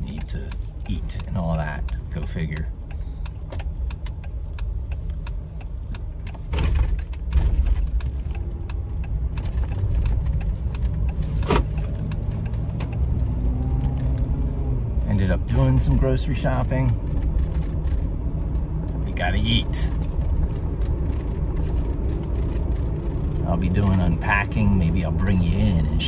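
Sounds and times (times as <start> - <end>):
clicks and knocks in car cabin: 0.0 - 14.2
car engine and road noise: 0.0 - 26.0.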